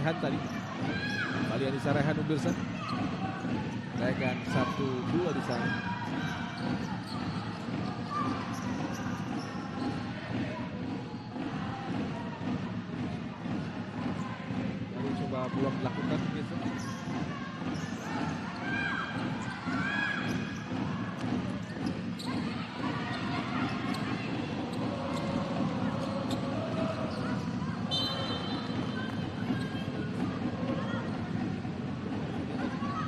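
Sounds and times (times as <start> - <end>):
crowd din: 0.0 - 33.0.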